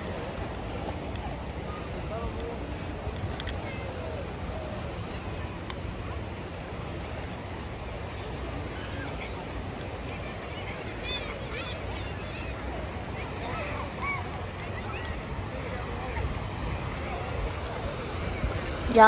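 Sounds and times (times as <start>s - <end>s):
wind noise on microphone: 12.2s - 19.0s.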